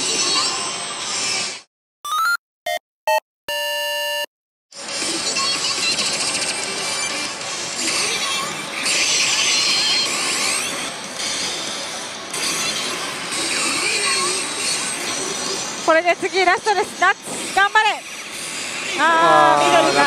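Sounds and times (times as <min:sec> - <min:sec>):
electronic jingle with beeps: 0:02.1 - 0:04.3
slot machines electronic music: 0:02.1 - 0:04.3.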